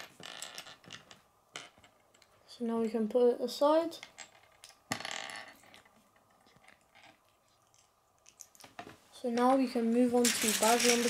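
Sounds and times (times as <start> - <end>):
plastic pieces rattling: 10.0 - 11.0
plastic pieces clicking on wood: 10.2 - 11.0.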